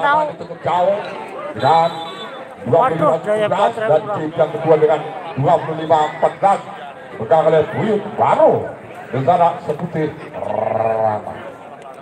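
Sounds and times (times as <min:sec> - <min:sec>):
low background hubbub: 0:00.0 - 0:12.0.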